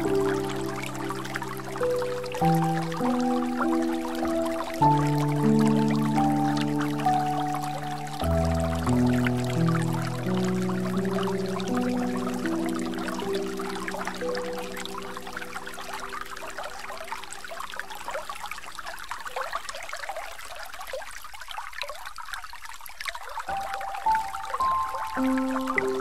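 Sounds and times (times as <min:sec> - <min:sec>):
slow relaxation music: 0:00.0 - 0:18.2, 0:23.4 - 0:26.0
trickling running water: 0:00.0 - 0:26.0.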